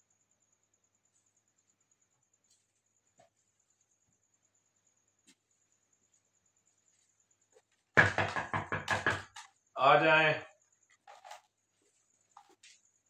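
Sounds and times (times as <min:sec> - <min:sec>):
rapid knocks on a door: 0:08.0 - 0:09.5.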